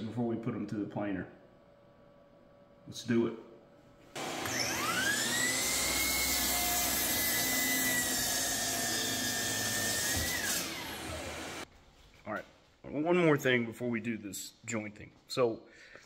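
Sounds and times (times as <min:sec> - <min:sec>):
miter saw cutting wood: 0:04.2 - 0:11.6.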